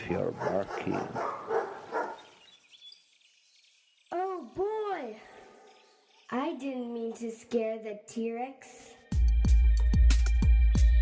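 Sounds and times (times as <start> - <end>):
faint high chirping: 0.0 - 7.2
dog bark: 0.1 - 2.2.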